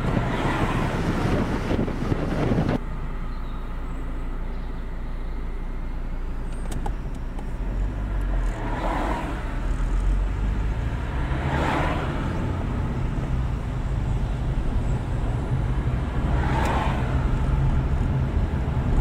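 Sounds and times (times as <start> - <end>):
road traffic drone: 0.0 - 19.0
vehicles passing: 0.0 - 19.0.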